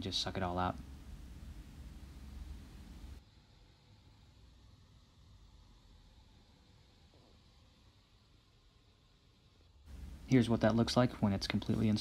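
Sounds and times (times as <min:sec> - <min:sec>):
faint steady hiss: 0:00.0 - 0:12.0
low rumble: 0:09.9 - 0:12.0.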